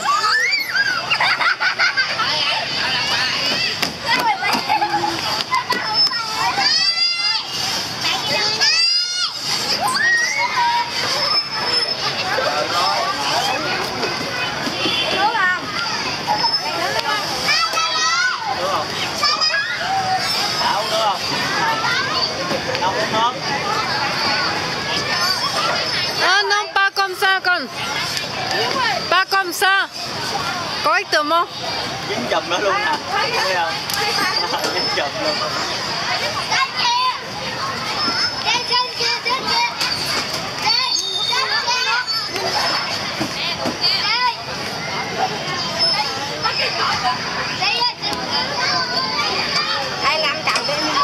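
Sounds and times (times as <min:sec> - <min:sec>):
children shouting and chattering: 0:00.0 - 0:51.0.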